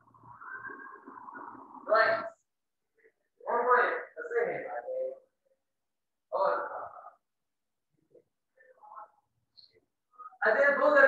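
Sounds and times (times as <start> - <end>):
marker squeaking on whiteboard: 0.0 - 1.9.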